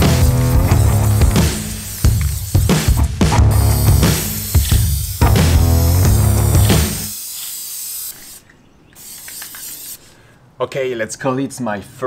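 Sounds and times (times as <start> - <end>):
music with heavy bass: 0.0 - 7.1
aerosol can spraying: 0.0 - 10.1.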